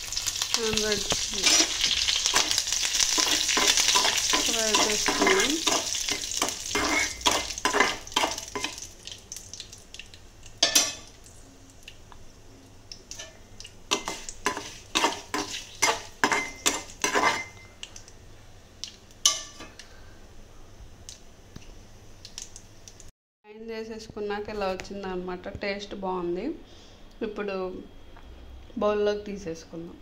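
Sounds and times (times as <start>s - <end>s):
seeds sizzling in oil: 0.0s - 12.1s, 12.8s - 18.2s
metal spoon scraping a pan: 1.0s - 8.8s, 13.1s - 17.6s.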